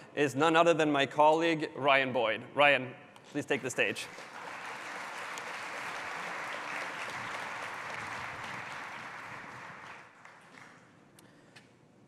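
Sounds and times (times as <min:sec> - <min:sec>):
audience applause: 0:03.6 - 0:10.9.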